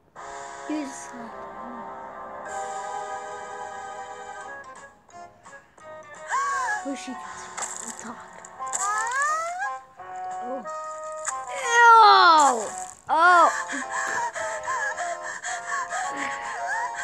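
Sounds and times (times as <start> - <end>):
background music: 0.0 - 17.0
high-pitched voice wailing and sobbing: 6.2 - 17.0.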